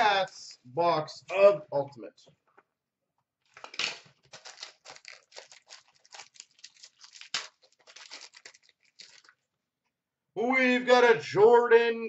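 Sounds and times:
packaging tearing and crinkling: 3.5 - 9.4.

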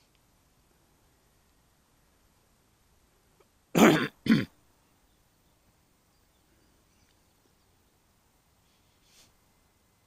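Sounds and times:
person coughing: 3.8 - 4.5.

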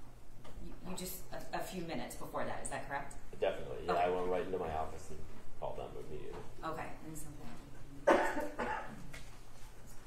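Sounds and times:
person coughing: 8.0 - 9.0.

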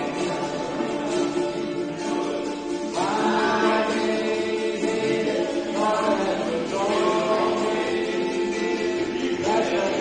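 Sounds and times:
group singing worship song: 0.0 - 10.0
strummed ukuleles: 0.0 - 10.0.

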